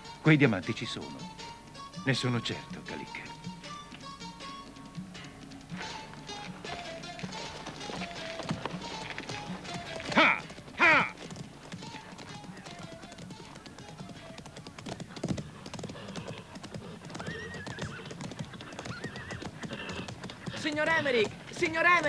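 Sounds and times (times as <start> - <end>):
quiet film music: 0.0 - 15.8, 17.1 - 22.0
horse hooves clopping: 0.0 - 22.0
horses neighing: 5.0 - 22.0.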